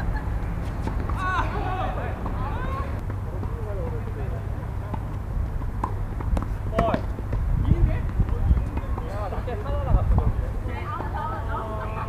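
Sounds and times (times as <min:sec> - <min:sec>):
steady low rumble: 0:00.0 - 0:12.0
tennis ball knocks: 0:05.8 - 0:07.1.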